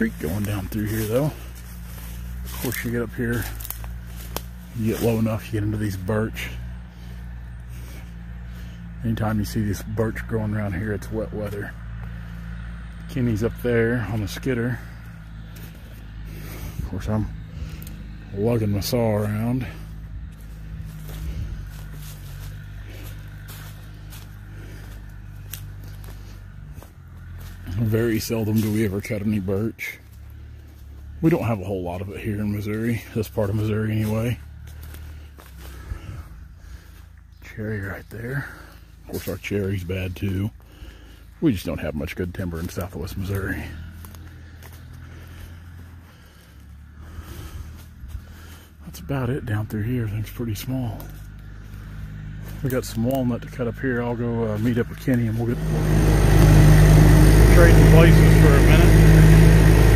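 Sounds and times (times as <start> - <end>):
footsteps through dry leaves: 0.0 - 59.9
low engine drone: 0.0 - 59.9.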